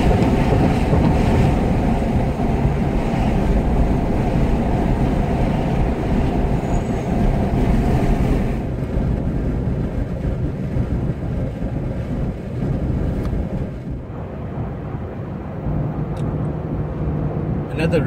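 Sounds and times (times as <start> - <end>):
car cabin road and engine noise: 0.0 - 18.0.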